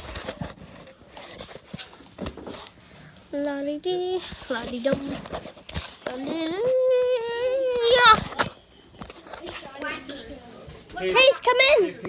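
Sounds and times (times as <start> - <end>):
children's voices: 6.0 - 12.0
child calling out: 6.4 - 8.2.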